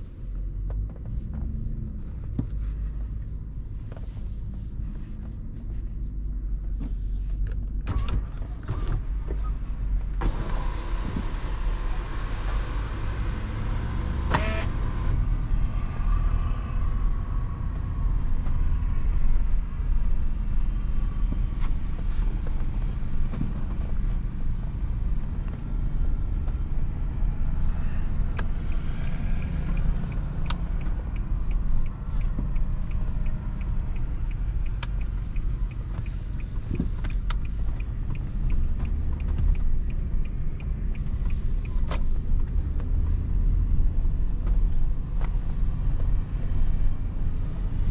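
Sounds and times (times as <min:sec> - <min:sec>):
engine rumble inside cabin: 0:00.0 - 0:47.9.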